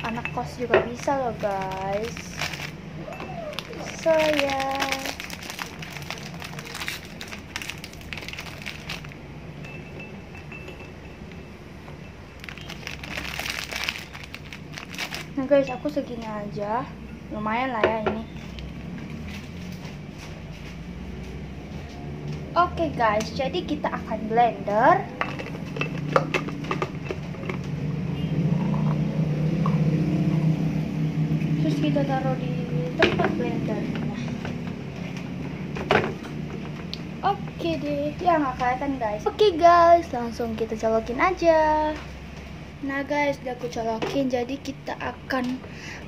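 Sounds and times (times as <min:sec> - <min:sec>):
plastic wrapper crinkling: 0:01.0 - 0:02.8, 0:03.5 - 0:09.2, 0:12.4 - 0:15.4.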